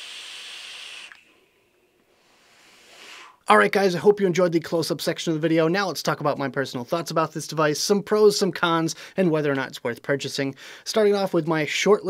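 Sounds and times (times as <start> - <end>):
vape hiss of air and vapour: 0.0 - 1.4, 2.0 - 3.4.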